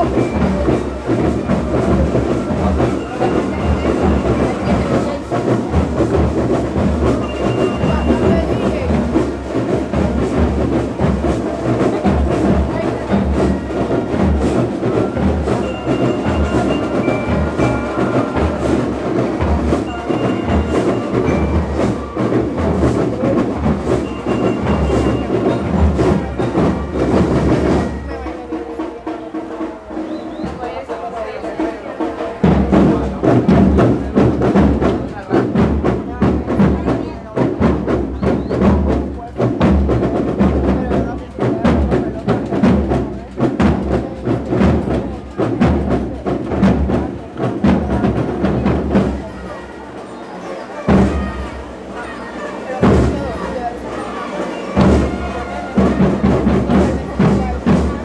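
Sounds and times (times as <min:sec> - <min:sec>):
bass and snare drums marching rhythm: 0:00.0 - 0:58.0
high ringing notes: 0:14.9 - 0:22.4.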